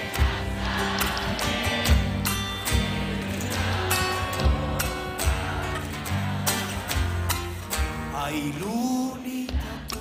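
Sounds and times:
bass drum: 0.0s - 7.4s
strummed acoustic guitars: 0.0s - 10.0s.

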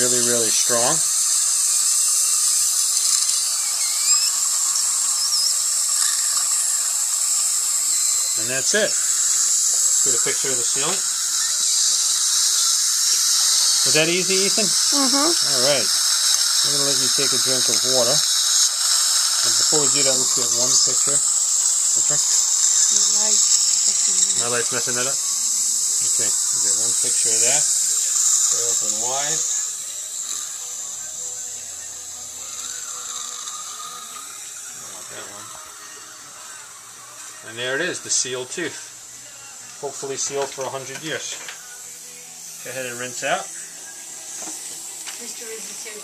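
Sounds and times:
dental suction hissing: 0.0s - 46.0s
saliva ejector sucking: 1.0s - 14.0s, 14.7s - 24.6s, 32.4s - 36.2s
person humming: 14.9s - 15.5s.

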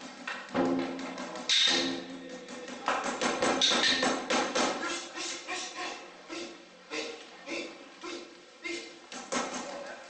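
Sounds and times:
sharp percussion knocks: 0.4s - 4.8s.

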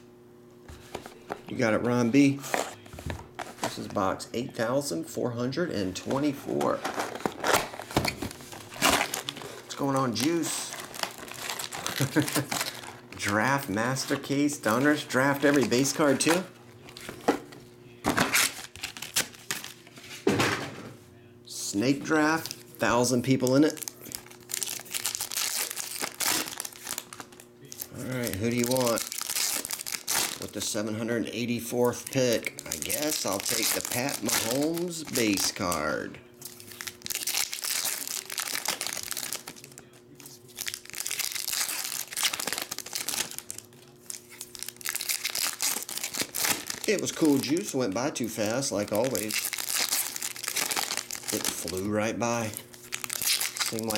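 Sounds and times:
foil packs crinkling: 6.0s - 17.5s, 18.1s - 19.9s, 22.1s - 53.9s.

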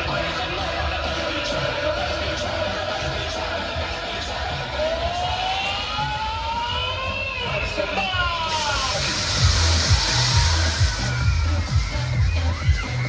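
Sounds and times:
electronic dance music: 0.0s - 13.0s
siren-like gliding tones: 4.9s - 7.3s
loud hiss: 8.4s - 13.0s
heavy bass beat: 8.5s - 13.0s.

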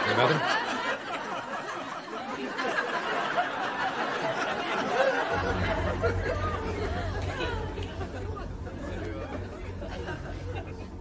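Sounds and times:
indistinct chatter of voices: 0.0s - 11.0s
steady low hum: 5.2s - 11.0s.

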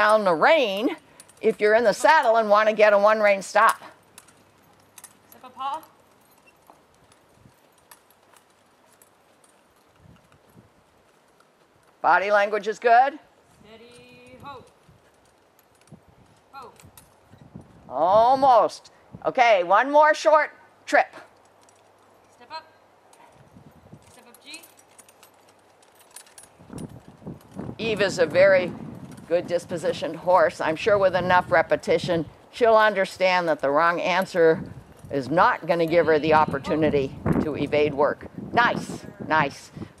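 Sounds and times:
horse hoofbeats: 0.0s - 17.9s, 23.2s - 37.7s.

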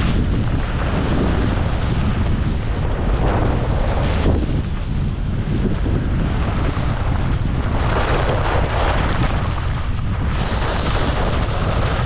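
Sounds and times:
skis carving snow: 0.0s - 12.0s
wind rushing over microphone: 0.0s - 12.0s.

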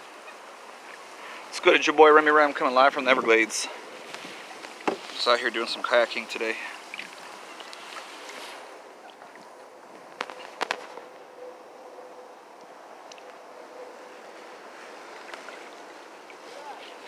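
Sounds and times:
faint outdoor hiss: 0.0s - 17.0s.

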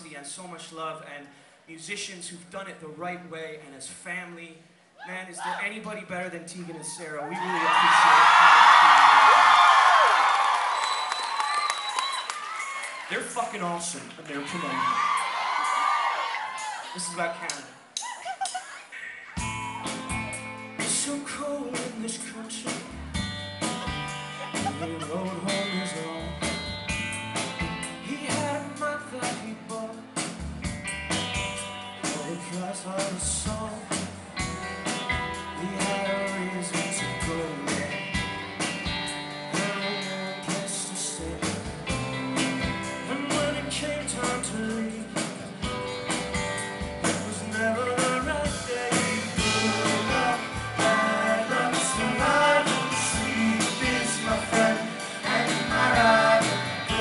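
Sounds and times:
live rock band playing: 19.4s - 57.0s.

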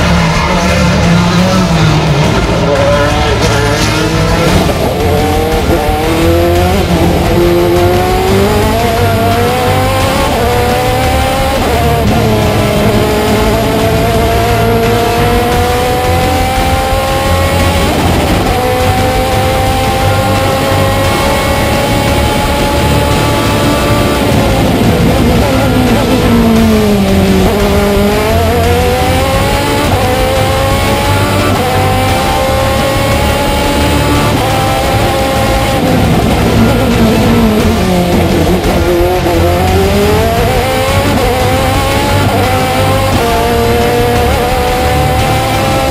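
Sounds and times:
racing engine accelerating: 0.0s - 45.9s.

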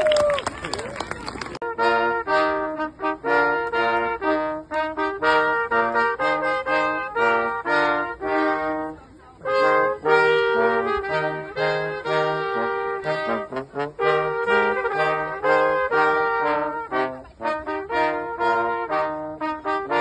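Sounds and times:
brass group playing melody: 1.0s - 20.0s.

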